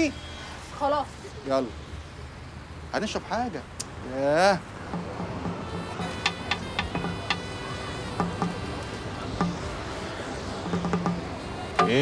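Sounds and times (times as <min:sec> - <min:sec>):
sparse plucked notes: 0:04.8 - 0:12.0.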